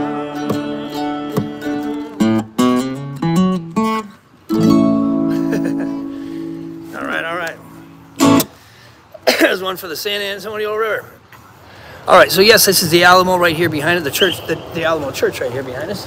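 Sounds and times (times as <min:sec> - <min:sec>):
acoustic guitar: 0:00.0 - 0:09.4
mandolin: 0:00.1 - 0:08.6.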